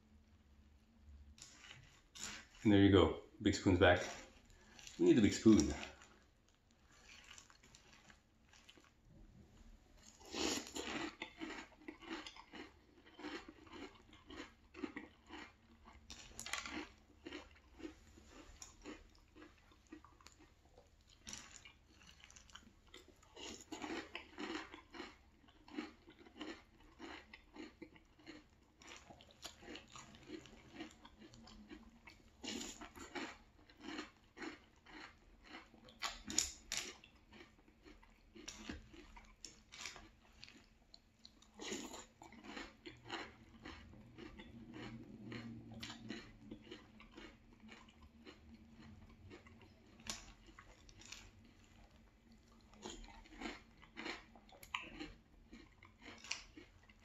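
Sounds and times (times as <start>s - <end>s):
chewing and crunching cereal: 0.0s - 57.0s.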